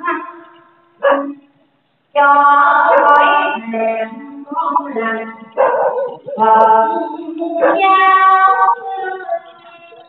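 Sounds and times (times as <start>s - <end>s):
person singing long notes: 2.2s - 10.0s.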